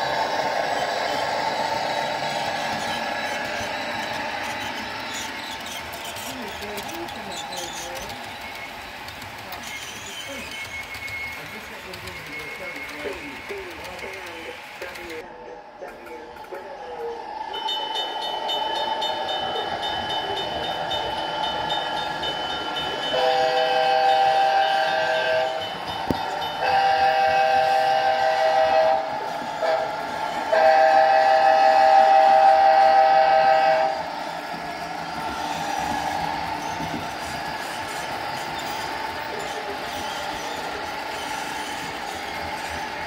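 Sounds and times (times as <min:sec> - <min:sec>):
model locomotive engine sound: 0:00.0 - 0:43.0
multi-chime train horn blasts: 0:17.5 - 0:29.9, 0:30.5 - 0:34.1.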